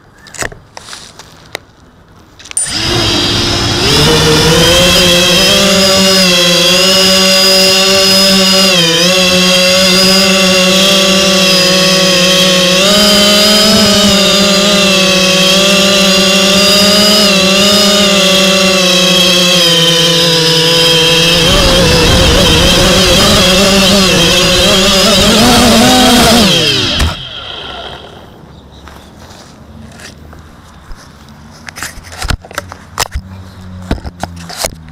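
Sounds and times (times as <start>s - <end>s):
quadcopter motors whining: 2.5s - 28.5s.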